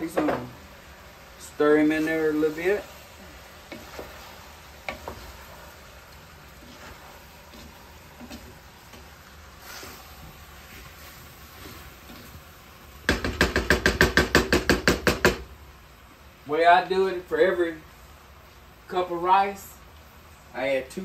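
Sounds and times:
wooden spoon scraping pot: 0:01.9 - 0:12.4
spoon knocking against pot: 0:13.1 - 0:15.4.

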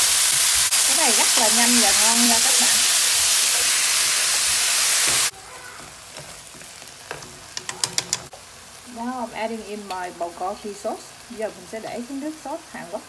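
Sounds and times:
meat and onion sizzling in pan: 0:00.0 - 0:13.0.

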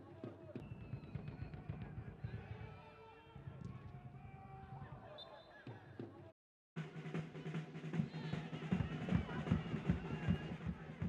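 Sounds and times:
stadium crowd noise: 0:00.0 - 0:11.0
drums beating: 0:06.8 - 0:11.0.

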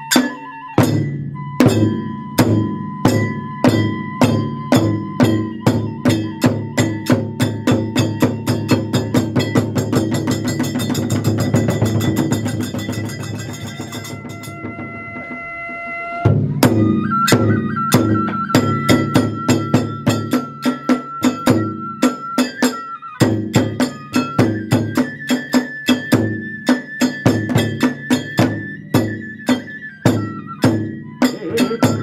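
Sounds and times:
bamboo flute: 0:00.0 - 0:32.0
drums and hand cymbals: 0:00.0 - 0:32.0.

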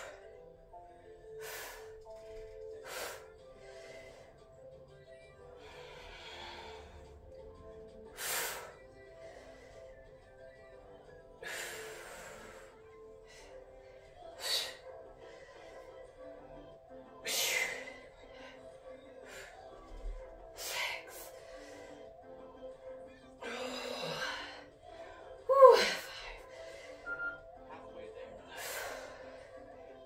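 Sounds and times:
television background music: 0:00.0 - 0:30.0.

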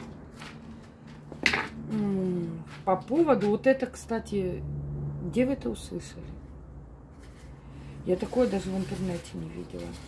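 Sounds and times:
woman speaking: 0:01.8 - 0:06.5, 0:08.0 - 0:10.0.

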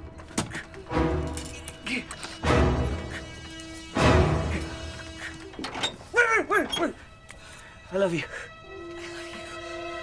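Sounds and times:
tense film score: 0:00.0 - 0:10.0.

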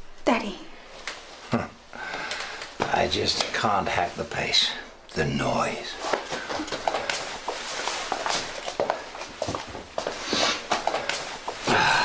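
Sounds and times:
footsteps: 0:02.0 - 0:04.2, 0:05.9 - 0:12.0.

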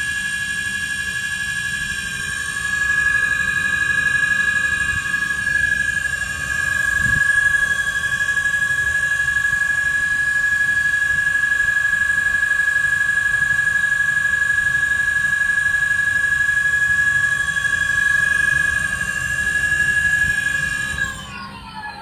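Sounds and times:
electric scooter motor whining: 0:00.0 - 0:22.0.

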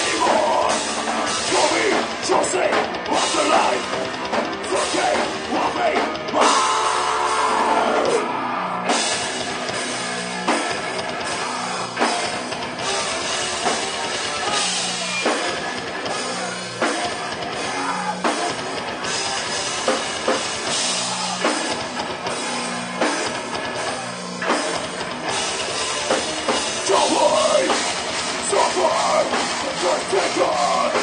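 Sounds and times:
bass guitar: 0:00.0 - 0:31.0
distorted electric guitar: 0:00.0 - 0:31.0
drum kit and cymbals: 0:00.0 - 0:31.0.

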